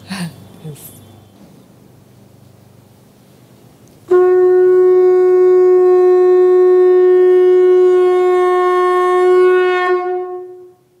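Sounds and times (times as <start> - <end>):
conch shell blown: 4.0 - 11.0.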